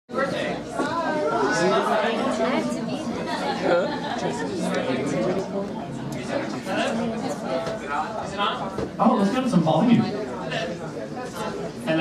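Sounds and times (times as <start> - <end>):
voices chattering: 0.1 - 12.0.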